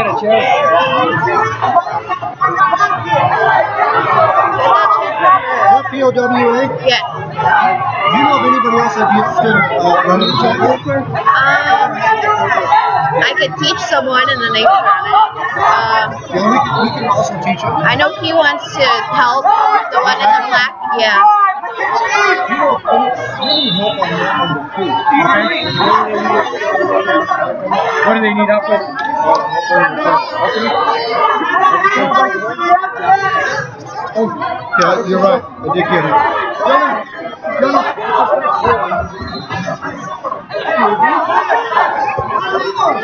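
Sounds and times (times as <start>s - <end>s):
indistinct chatter: 0.0s - 43.0s
overlapping voices talking: 0.0s - 43.0s.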